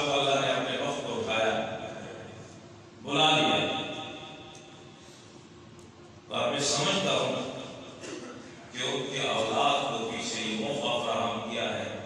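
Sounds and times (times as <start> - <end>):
man speaking through microphone: 0.0 - 4.5, 6.3 - 12.0.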